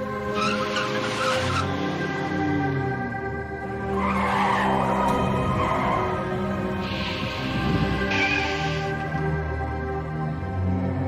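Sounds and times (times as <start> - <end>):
car tyres screeching: 0.0 - 9.2
background music: 0.0 - 11.0.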